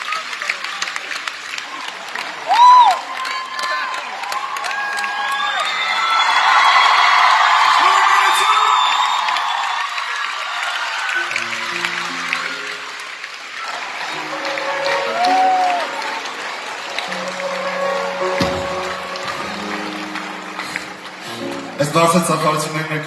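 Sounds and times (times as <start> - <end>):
audience applause and cheering: 0.0 - 23.0
live band playing slow chords: 14.2 - 22.8.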